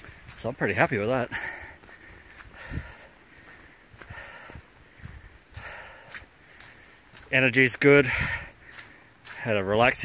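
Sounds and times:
footsteps on wet dirt trail: 0.0 - 10.0.

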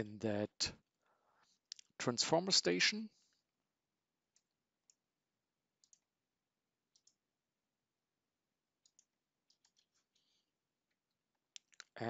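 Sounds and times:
computer mouse clicks: 5.8 - 6.0, 6.9 - 7.2, 8.8 - 10.3.

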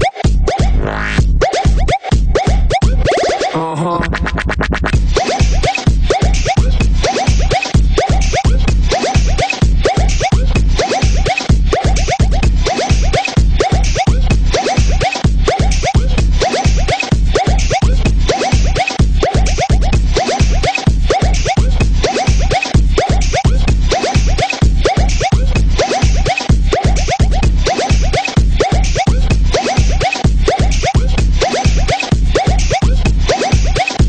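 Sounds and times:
electro dance music: 0.0 - 34.0
fast bass drum beat: 0.0 - 34.0.

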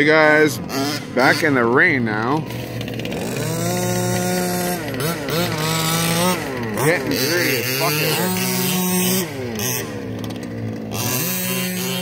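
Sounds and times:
small two-stroke engine revving: 0.0 - 12.0.

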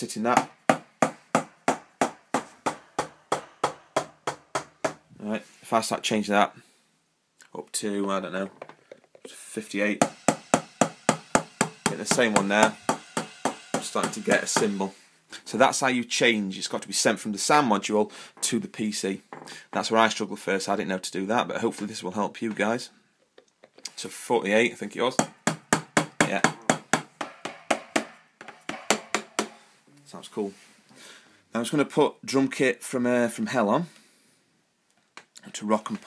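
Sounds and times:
electronic drum pad hits: 10.0 - 14.9
cymbal sound: 10.0 - 15.1.

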